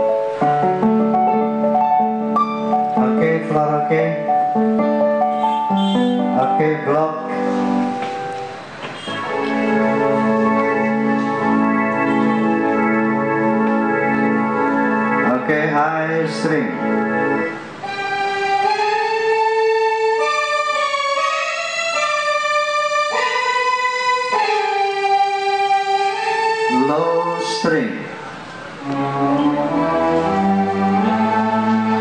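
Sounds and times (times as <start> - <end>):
keyboard chord pulsing: 0.0 - 32.0
slow keyboard melody: 0.0 - 32.0.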